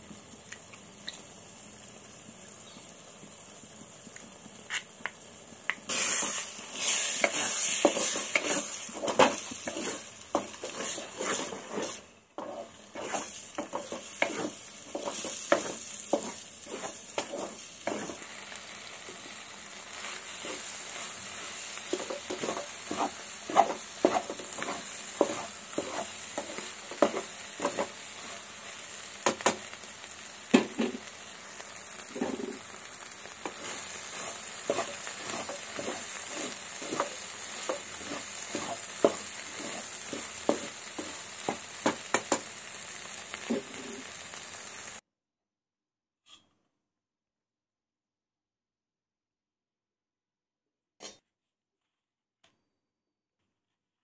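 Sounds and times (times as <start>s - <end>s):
frying sizzle: 0.0s - 45.0s
spatula scraping frying pan: 5.9s - 28.5s, 32.0s - 42.4s.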